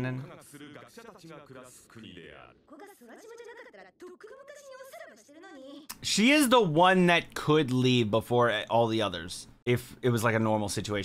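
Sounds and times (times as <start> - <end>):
woman speaking high-pitched: 2.7 - 5.9.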